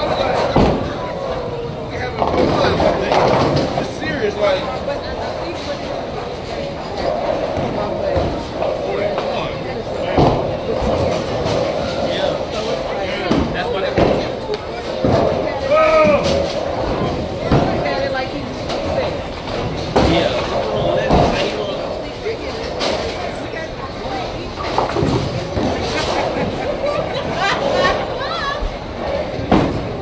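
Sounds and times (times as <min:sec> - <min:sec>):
background chatter: 0:00.0 - 0:30.0
bowling balls crashing into pins: 0:02.1 - 0:04.0, 0:10.1 - 0:21.7.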